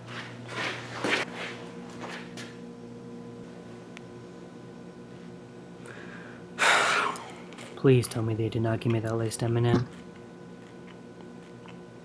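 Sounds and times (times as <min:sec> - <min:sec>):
man speaking: 0:07.8 - 0:09.9.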